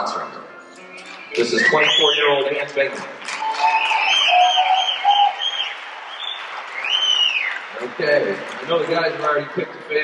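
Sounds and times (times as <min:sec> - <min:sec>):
audience whistling: 0:00.2 - 0:07.9
audience clapping: 0:01.0 - 0:10.0.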